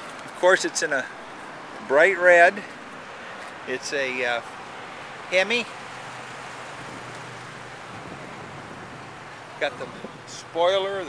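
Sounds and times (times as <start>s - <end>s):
outdoor background noise: 0.0s - 11.0s.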